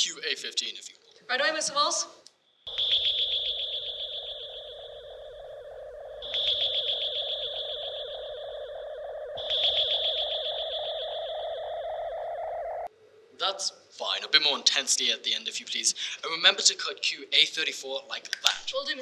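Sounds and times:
high fast-pulsing tone: 2.7s - 12.9s
steady hum: 2.7s - 13.2s.

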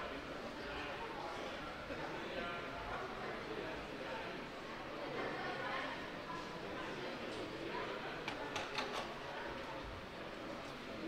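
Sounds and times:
murmur of a large hall: 0.0s - 11.0s.

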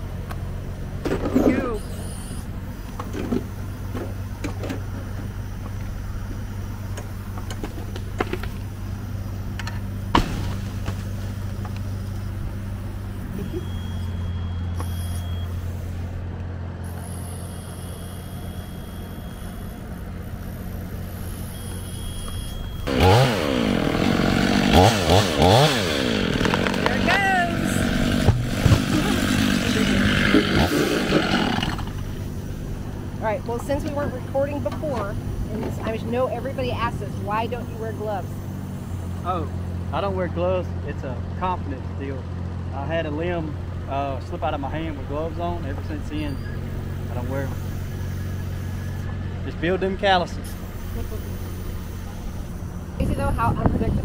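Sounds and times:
low engine hum: 0.0s - 54.0s
chainsaw revving and cutting wood: 16.8s - 34.4s, 46.6s - 53.8s.

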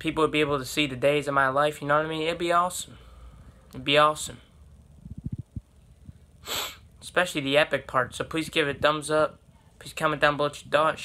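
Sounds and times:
soft low thumps: 4.9s - 6.3s
sharp breath through nose: 6.4s - 6.8s.

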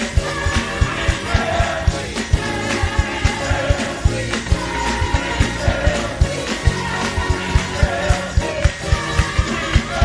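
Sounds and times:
band music with quick beat: 0.0s - 10.0s
gospel choir singing: 0.0s - 10.0s.

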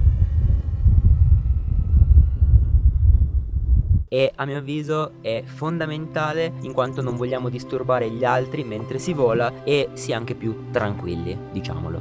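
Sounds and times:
thin whine of drone propellers: 0.0s - 3.7s
wind noise on microphone: 0.0s - 4.1s.

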